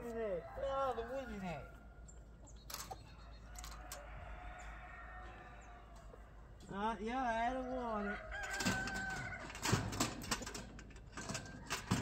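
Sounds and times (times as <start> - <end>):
chickens squawking: 0.2 - 6.6
rooster crowing: 3.5 - 6.1, 8.0 - 9.8.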